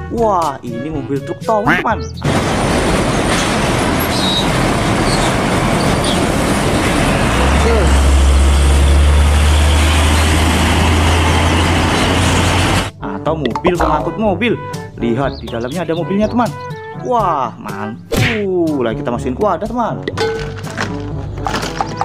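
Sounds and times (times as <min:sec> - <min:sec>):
deep low truck rumble: 0:02.0 - 0:13.0
trucks driving past: 0:02.0 - 0:13.0.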